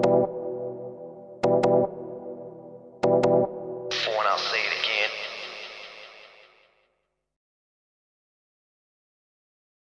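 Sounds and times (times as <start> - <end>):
filtered voice sample with echo: 3.9 - 6.8.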